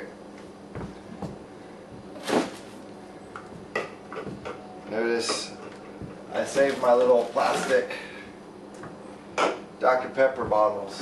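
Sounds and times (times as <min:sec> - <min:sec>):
plastic bottles clattering: 0:06.4 - 0:07.9.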